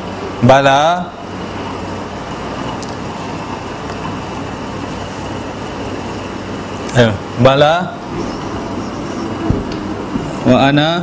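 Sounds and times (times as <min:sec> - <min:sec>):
air conditioning hum and hiss: 0:00.0 - 0:11.0.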